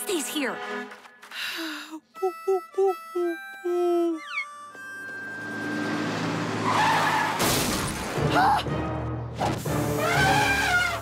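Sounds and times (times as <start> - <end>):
cartoon vehicle rumbling: 4.1 - 7.4.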